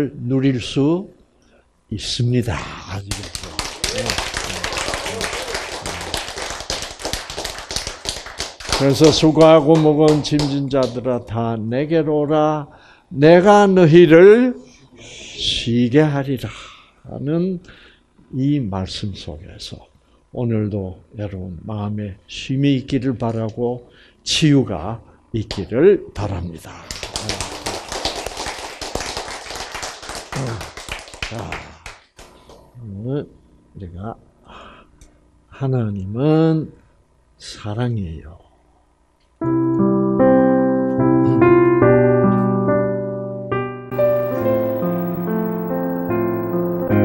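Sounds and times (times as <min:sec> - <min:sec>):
audience applauding: 0:03.1 - 0:10.6, 0:27.0 - 0:31.6
many hands clapping: 0:03.1 - 0:11.0, 0:26.9 - 0:32.3.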